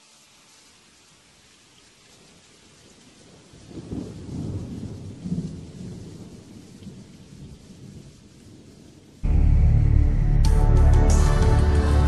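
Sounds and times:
steady rain: 0:00.0 - 0:12.0
thunder rumbling: 0:03.2 - 0:10.3.

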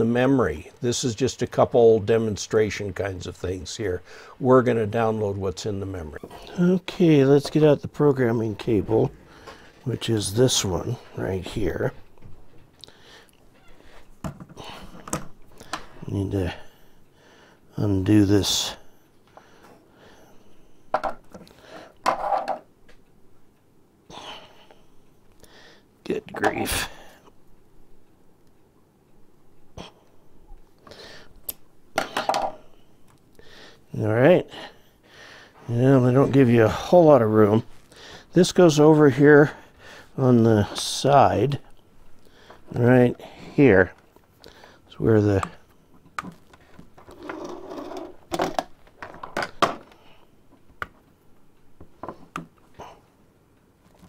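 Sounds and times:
cable rubbing clatter: 0:46.3 - 0:49.3
scraping and rubbing: 0:47.0 - 0:48.2.

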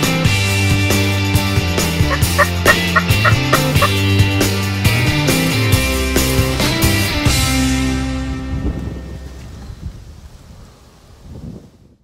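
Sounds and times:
rock music: 0:00.0 - 0:08.6
turkey gobbling: 0:02.0 - 0:04.0.

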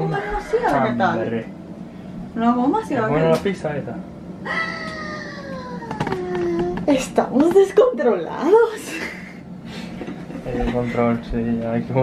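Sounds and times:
whining vocal call falling in pitch: 0:04.4 - 0:06.8.

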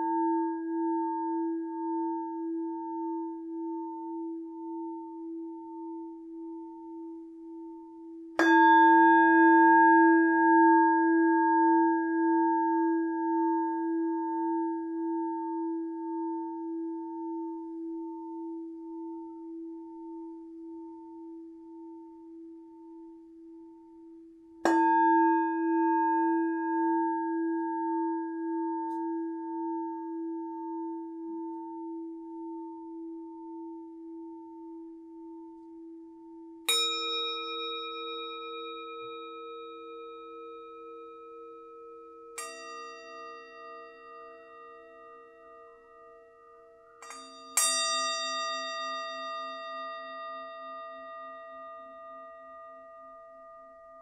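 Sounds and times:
singing bowl ringing: 0:00.0 - 0:54.0
higher-pitched bowl struck: 0:08.3 - 0:15.7, 0:24.6 - 0:32.9, 0:36.6 - 0:54.0.

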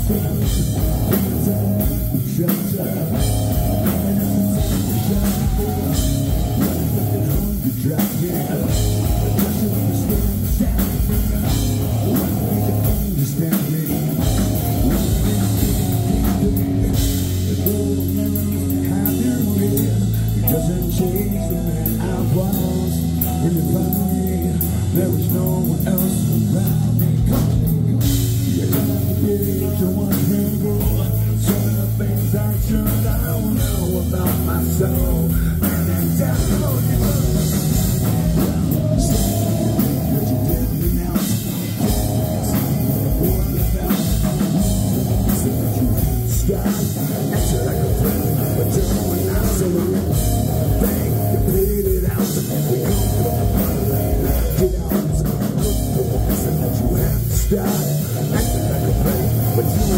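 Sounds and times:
bass guitar: 0:00.0 - 0:59.9
drum kit: 0:00.0 - 0:59.9
electric guitar: 0:00.0 - 0:59.9
man singing: 0:00.0 - 0:59.9.

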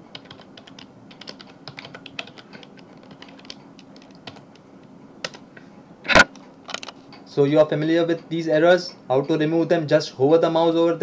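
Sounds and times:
typing on computer keyboard: 0:00.1 - 0:04.6.

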